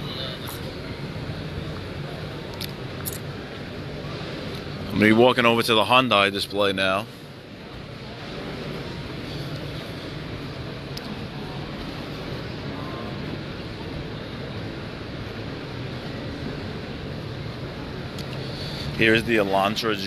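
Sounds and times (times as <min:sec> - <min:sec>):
distant crowd murmur: 0:00.0 - 0:20.0
ventilation: 0:00.0 - 0:20.0.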